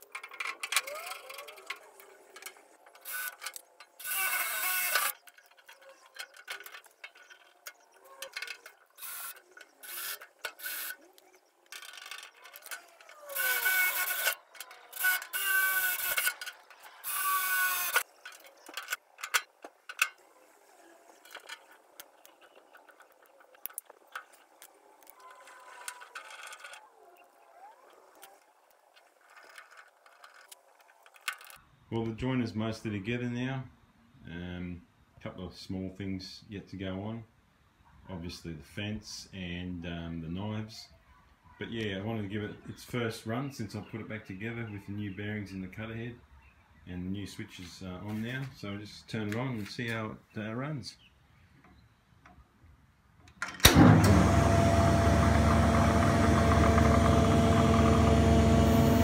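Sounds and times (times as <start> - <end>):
handling clicks and knocks: 0.0 - 4.0
cordless drill whine: 3.0 - 5.2, 9.0 - 11.0, 12.6 - 18.0, 53.7 - 59.0.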